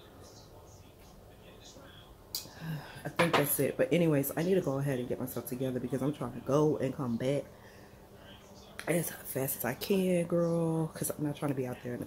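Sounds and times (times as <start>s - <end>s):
woman speaking: 2.5s - 7.5s, 8.8s - 12.0s.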